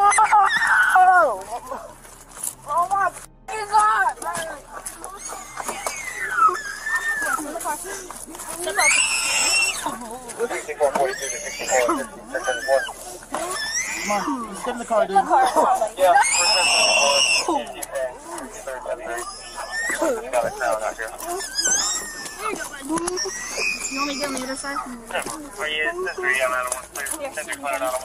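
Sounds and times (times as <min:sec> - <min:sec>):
people shouting and screaming: 0:00.0 - 0:01.9, 0:04.8 - 0:07.6, 0:08.4 - 0:14.8, 0:16.0 - 0:17.8, 0:19.1 - 0:25.3.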